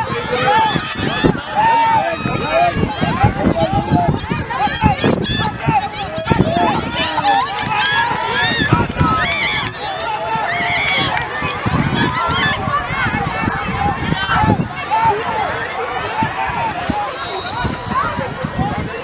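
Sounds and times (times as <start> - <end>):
high-pitched voices shouting: 0.0 - 19.0.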